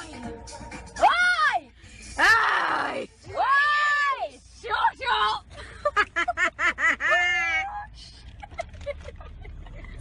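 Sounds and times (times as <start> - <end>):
woman laughing: 5.6 - 7.7, 8.3 - 10.0.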